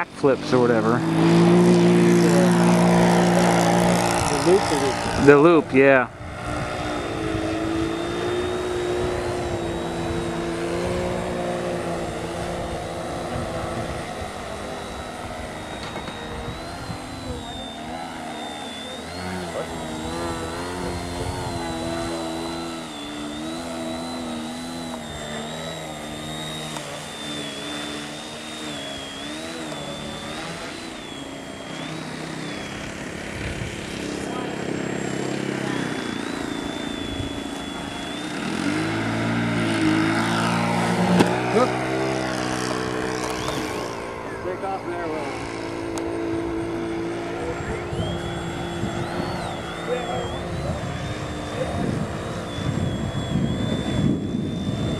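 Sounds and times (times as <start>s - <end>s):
model airplane motor buzzing: 0.0s - 54.9s.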